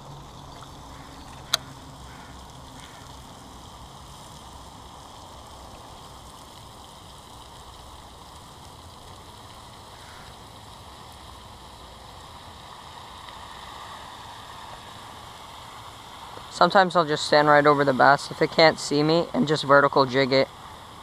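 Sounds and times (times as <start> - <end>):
steady outdoor hiss: 0.0 - 21.0.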